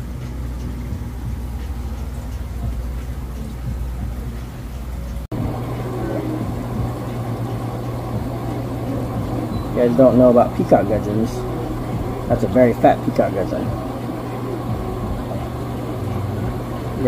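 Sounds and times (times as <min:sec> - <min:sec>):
low mechanical hum of pumps: 0:00.0 - 0:17.0.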